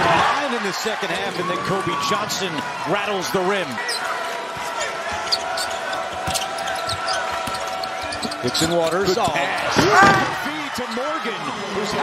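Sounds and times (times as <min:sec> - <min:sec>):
sneaker squeaks: 0:03.8 - 0:11.2.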